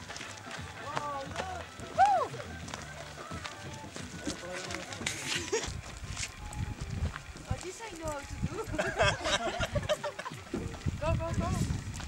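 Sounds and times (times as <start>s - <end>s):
people's voices: 0.2s - 11.7s.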